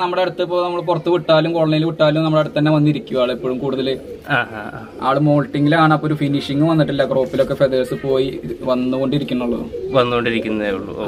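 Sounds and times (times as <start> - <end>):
pigeon cooing: 0.0 - 11.0.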